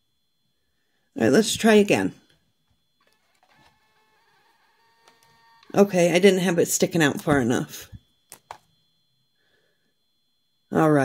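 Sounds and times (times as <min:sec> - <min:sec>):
label printer motor whine: 0:01.3 - 0:09.4.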